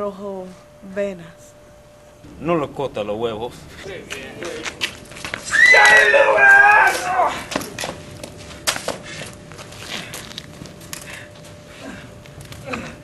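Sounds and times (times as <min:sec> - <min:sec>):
high-pitched yell: 0:05.5 - 0:07.5
footsteps and scuffling: 0:06.7 - 0:12.9.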